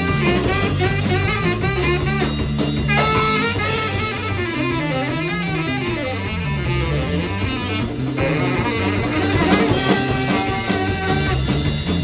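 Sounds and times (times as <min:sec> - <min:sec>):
drum kit with cymbals: 0:00.0 - 0:12.0
electric bass: 0:00.0 - 0:12.0
guitar line: 0:00.0 - 0:12.0.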